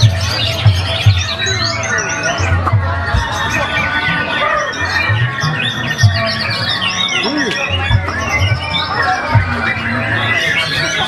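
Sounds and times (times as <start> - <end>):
songbirds chirping and whistling: 0.0 - 11.0.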